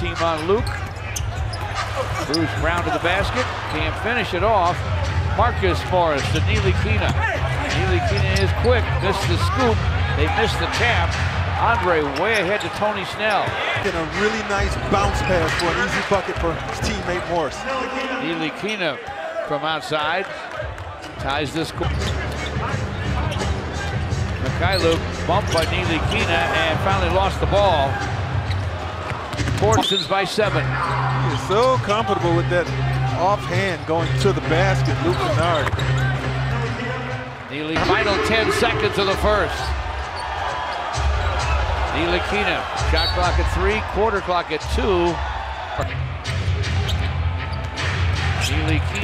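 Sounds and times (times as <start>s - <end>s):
crowd noise: 0.0s - 49.0s
low arena din: 30.6s - 49.0s
arena music with heavy bass: 37.8s - 40.2s.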